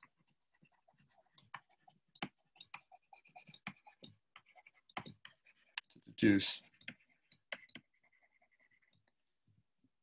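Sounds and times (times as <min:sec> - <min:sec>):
stylus writing on tablet: 0:00.0 - 0:09.4.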